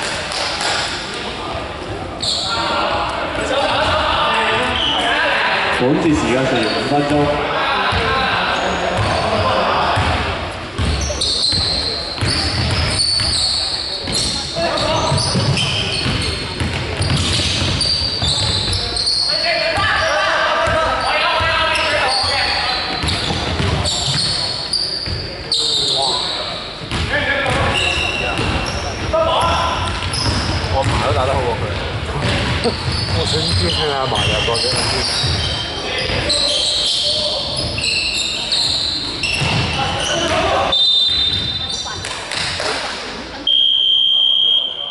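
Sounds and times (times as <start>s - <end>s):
players' voices echoing: 0.0s - 44.9s
sneakers squeaking on court: 1.9s - 2.8s, 3.8s - 5.1s, 7.9s - 42.7s.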